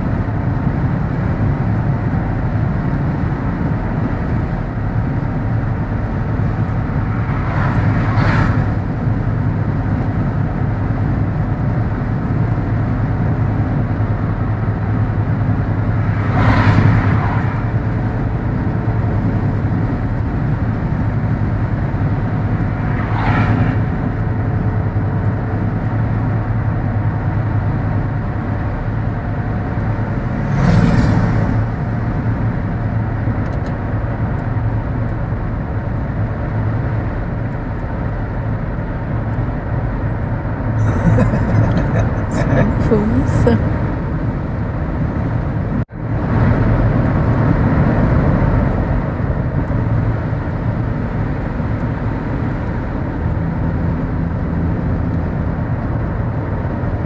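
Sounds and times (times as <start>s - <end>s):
car engine and tyre hum: 0.0s - 57.0s
passing vehicles whooshing: 0.0s - 57.0s.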